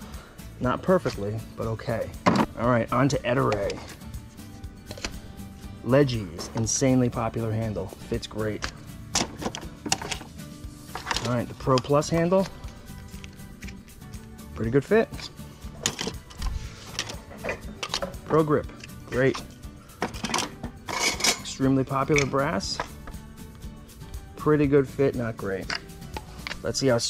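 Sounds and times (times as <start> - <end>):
quiet background music: 0.0 - 27.0
plastic handles clacking together: 8.6 - 10.3, 10.9 - 12.6, 15.2 - 21.5.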